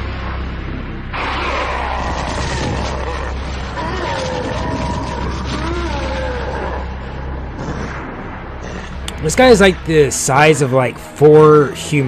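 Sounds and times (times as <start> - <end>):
steady low rumble: 0.0 - 11.2
monster growling and groaning: 1.2 - 9.4.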